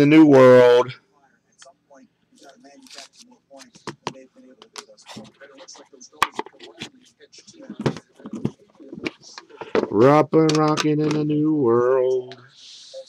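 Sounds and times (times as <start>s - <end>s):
quiet murmuring voice: 1.0s - 10.0s, 11.0s - 13.0s.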